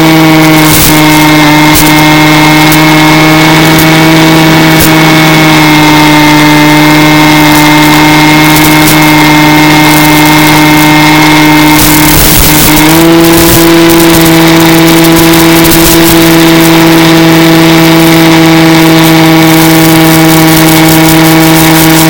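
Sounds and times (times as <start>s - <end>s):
electric motor and propeller droning: 0.0s - 22.0s.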